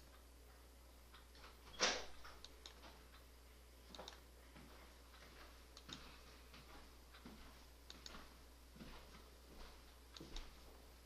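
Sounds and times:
low steady hum: 0.0s - 11.0s
computer mouse clicking: 2.4s - 2.8s, 5.8s - 6.0s.

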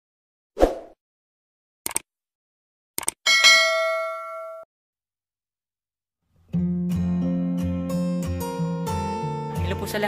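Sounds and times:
notification bell ding: 3.3s - 4.6s.

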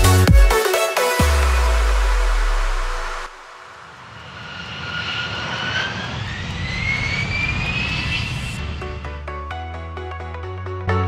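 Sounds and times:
electronic background music: 0.0s - 4.2s, 8.6s - 11.0s
jet engine rumble and whine: 3.7s - 9.1s.

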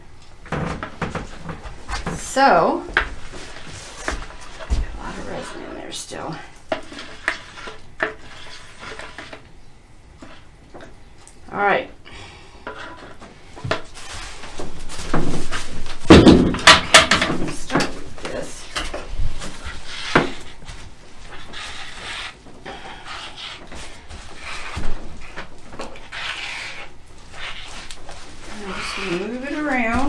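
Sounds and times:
plastic spreader scraping resin: 6.7s - 9.4s, 25.8s - 30.0s
tools and bucket clattering: 12.7s - 21.6s.

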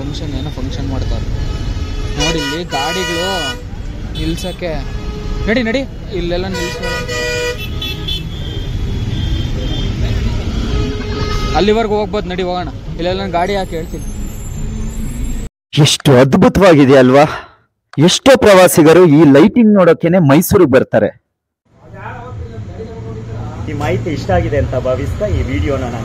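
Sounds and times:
street traffic rumble: 0.0s - 15.5s, 21.7s - 26.0s
vehicle horn long honk: 1.3s - 5.8s, 6.5s - 11.8s.

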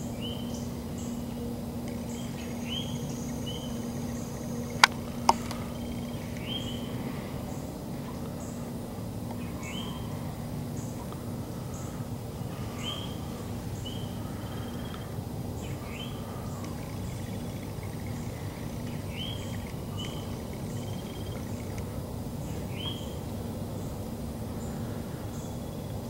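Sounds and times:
low background rumble: 0.0s - 26.0s
faint high insect chirps: 1.9s - 7.0s, 12.7s - 23.2s
bird calling: 2.0s - 8.7s, 9.4s - 23.2s.

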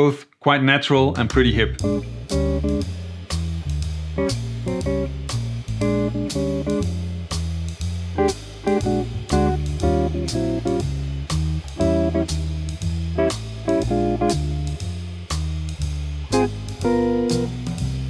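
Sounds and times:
bass and drums: 1.0s - 18.0s
electric jazz guitar chords: 1.5s - 18.0s.

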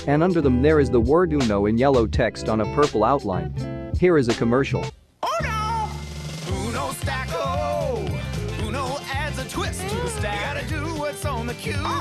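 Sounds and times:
jingle music: 5.3s - 12.0s.

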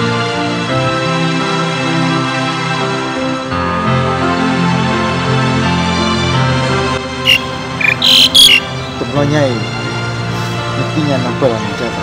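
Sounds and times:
soft background music: 0.0s - 12.0s
loud high-pitched chirps: 7.3s - 8.7s.

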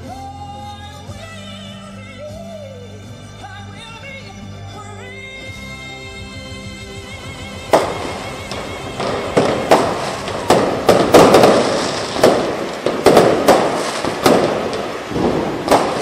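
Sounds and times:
fireworks bursting with loud bangs: 7.0s - 16.0s.

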